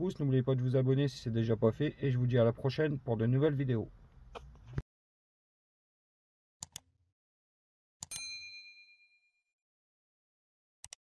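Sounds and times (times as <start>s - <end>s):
notification bell ding: 8.1s - 9.3s.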